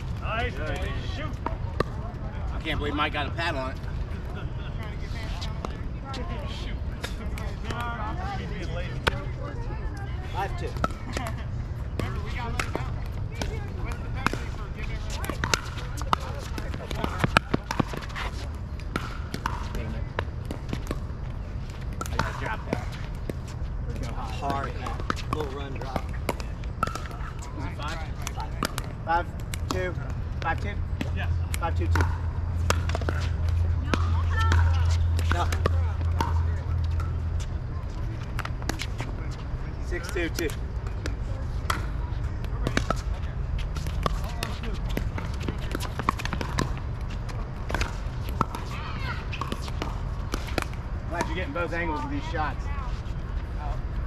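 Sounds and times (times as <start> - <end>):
ball bouncing on hard court: 10.6 - 21.1, 21.7 - 51.6.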